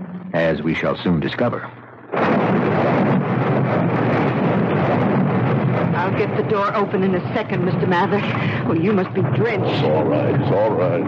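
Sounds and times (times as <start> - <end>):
rain: 2.1 - 11.0.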